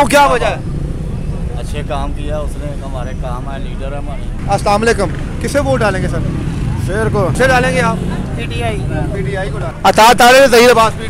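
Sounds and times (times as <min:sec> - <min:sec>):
man speaking loudly: 0:00.0 - 0:00.6, 0:08.9 - 0:11.0.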